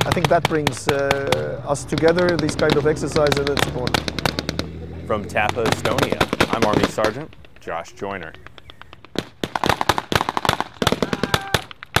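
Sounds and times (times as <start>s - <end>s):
rapid rifle fire: 0.0s - 4.6s, 5.6s - 7.5s, 8.5s - 12.0s.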